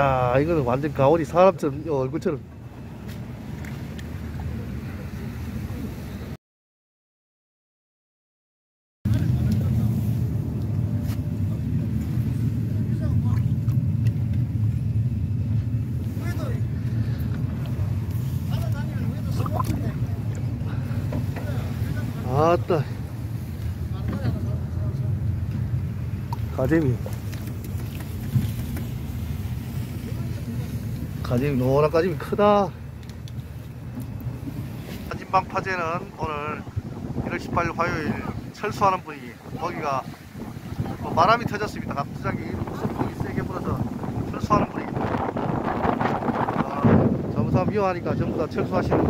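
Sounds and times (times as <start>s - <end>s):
boat engine rumbling: 0.0s - 6.4s, 9.1s - 49.0s
wind buffeting microphone: 9.1s - 49.0s.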